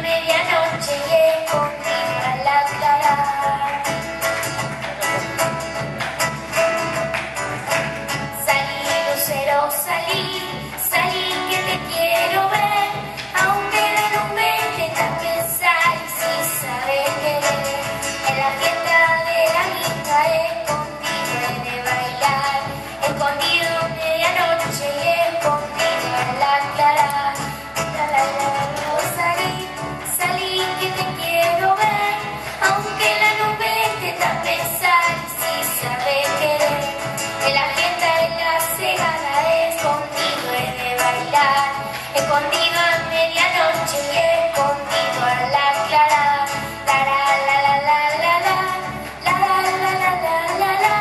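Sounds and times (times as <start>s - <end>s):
girl singing: 0.0s - 4.0s, 8.3s - 51.0s
acoustic guitars strumming: 0.0s - 51.0s.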